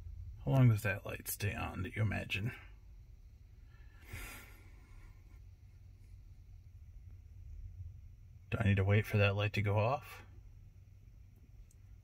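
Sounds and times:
faint low rumble: 0.0 - 12.0
soft exhale: 3.6 - 5.4.

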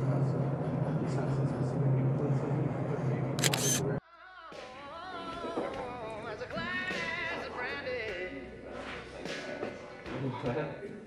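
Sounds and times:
camera shutter clicks: 3.4 - 3.9.

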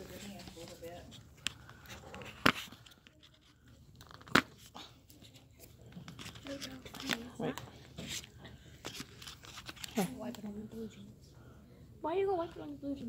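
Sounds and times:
slime stirred in plastic cup: 0.0 - 10.3.

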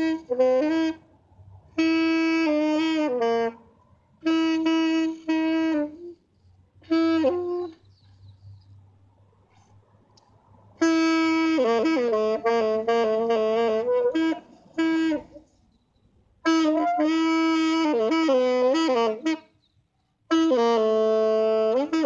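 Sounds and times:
solo saxophone: 0.0 - 7.9, 10.8 - 15.6, 16.4 - 19.6, 20.2 - 22.0.

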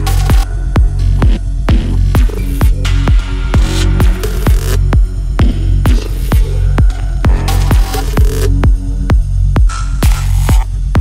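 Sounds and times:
deep kick drum: 0.0 - 11.0
steady low bass: 0.0 - 11.0.

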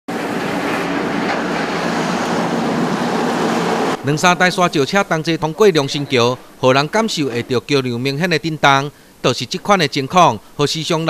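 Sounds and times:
dump trucks driving past: 0.1 - 8.2.

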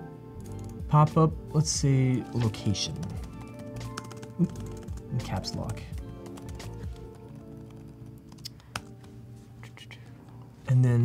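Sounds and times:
music with steady tone: 0.0 - 11.0
computer keys clicking: 0.4 - 0.8, 2.0 - 9.1.

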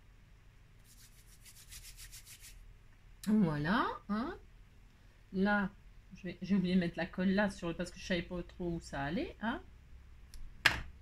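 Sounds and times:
fingers rubbing over paper: 0.8 - 2.6.

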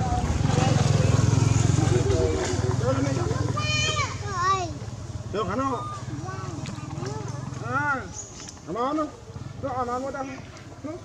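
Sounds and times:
engine running low rumble: 0.0 - 8.6
voices: 0.0 - 11.0
short squeaky calls: 5.6 - 8.6.

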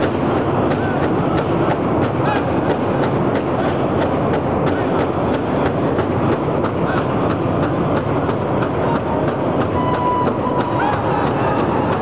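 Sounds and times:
large drum beaten in unison: 0.0 - 12.0.

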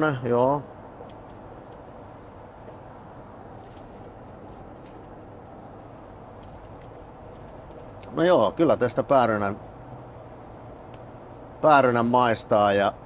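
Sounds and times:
road and drivetrain noise: 0.0 - 13.0.

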